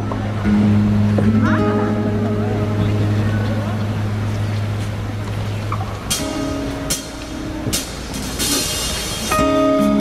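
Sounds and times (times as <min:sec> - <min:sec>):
sustained keyboard chord: 0:00.4 - 0:04.6.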